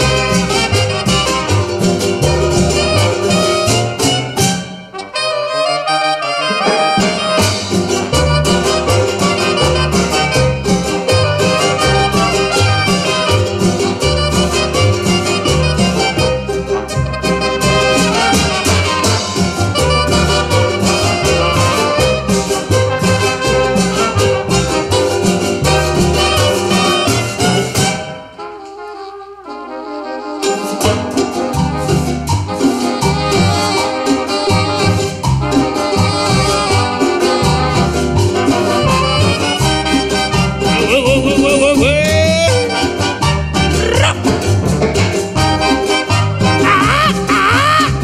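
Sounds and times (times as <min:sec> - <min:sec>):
live band with horns: 0:00.0 - 0:48.0.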